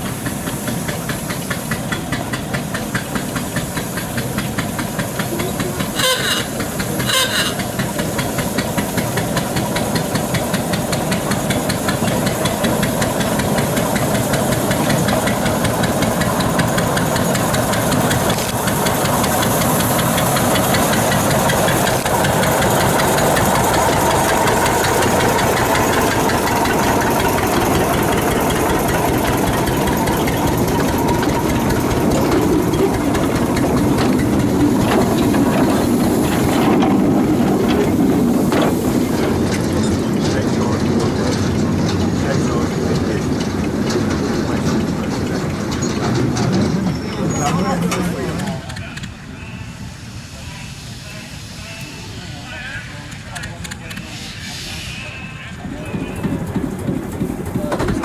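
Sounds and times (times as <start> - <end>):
small locomotive engine running: 0.0 - 58.0.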